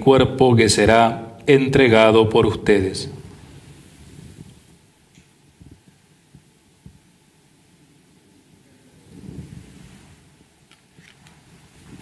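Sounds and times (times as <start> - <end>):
fabric rustling: 9.1 - 12.0.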